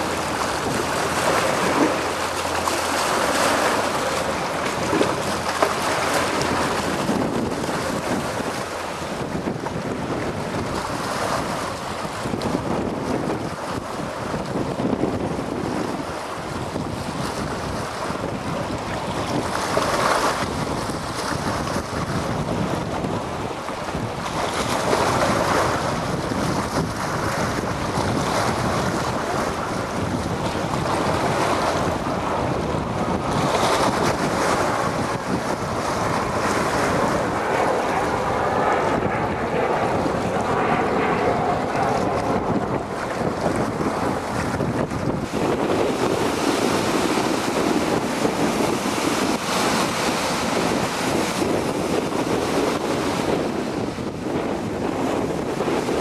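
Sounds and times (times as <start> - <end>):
water rushing and splashing: 0.0 - 56.0
wind buffeting microphone: 0.0 - 56.0.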